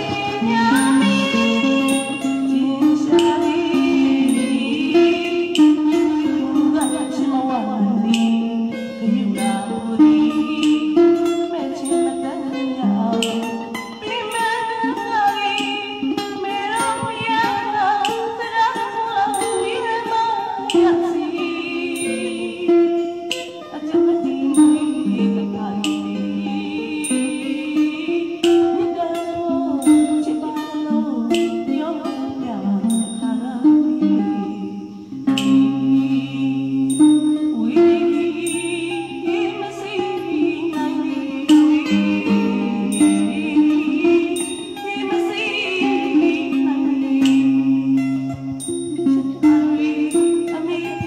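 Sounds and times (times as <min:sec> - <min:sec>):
plucked mandolin: 0:00.0 - 0:51.0
woman singing into a microphone: 0:00.0 - 0:51.0.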